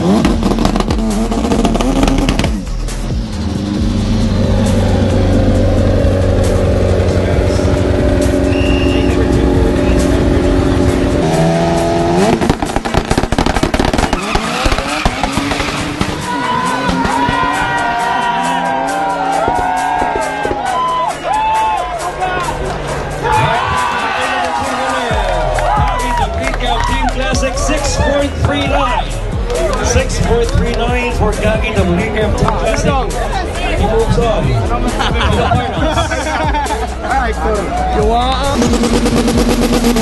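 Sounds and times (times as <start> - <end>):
race car engine revving: 0.0 - 20.8, 22.0 - 40.0.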